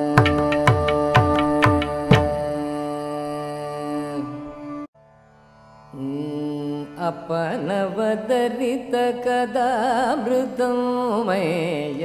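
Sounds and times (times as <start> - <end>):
ornamented vocal singing: 0.0 - 4.9, 6.0 - 12.0.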